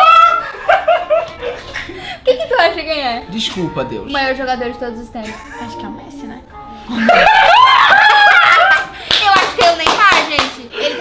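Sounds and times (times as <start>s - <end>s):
people laughing hard: 0.0s - 2.1s, 6.9s - 9.1s
hand claps: 8.0s - 10.7s.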